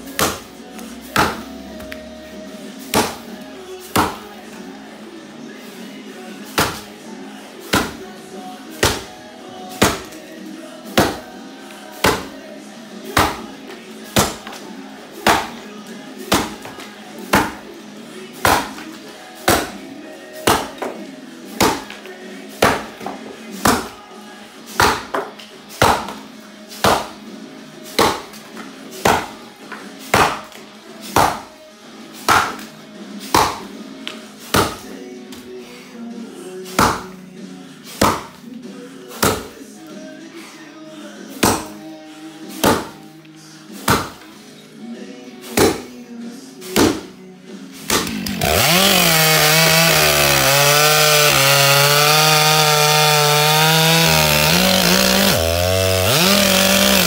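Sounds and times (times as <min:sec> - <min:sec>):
axe chopping into log: 0:00.2 - 0:00.5, 0:01.2 - 0:01.5, 0:02.9 - 0:03.2, 0:03.9 - 0:04.2, 0:06.5 - 0:06.9, 0:07.7 - 0:08.0, 0:08.8 - 0:09.1, 0:09.8 - 0:10.2, 0:11.0 - 0:11.3, 0:12.0 - 0:12.3, 0:13.2 - 0:13.4, 0:14.2 - 0:14.6, 0:15.3 - 0:15.5, 0:16.3 - 0:17.6, 0:18.4 - 0:18.8, 0:19.5 - 0:19.8, 0:20.5 - 0:21.0, 0:21.6 - 0:22.0, 0:22.6 - 0:23.9, 0:24.8 - 0:26.2, 0:26.8 - 0:27.1, 0:28.0 - 0:28.3, 0:29.0 - 0:29.4, 0:30.1 - 0:30.5, 0:31.1 - 0:31.5, 0:32.2 - 0:32.7, 0:33.3 - 0:33.7, 0:34.5 - 0:34.9, 0:36.8 - 0:37.1, 0:38.0 - 0:38.4, 0:39.1 - 0:39.5, 0:41.4 - 0:41.8, 0:42.6 - 0:43.0, 0:43.8 - 0:44.2, 0:45.5 - 0:45.8, 0:46.8 - 0:47.1, 0:47.8 - 0:57.0.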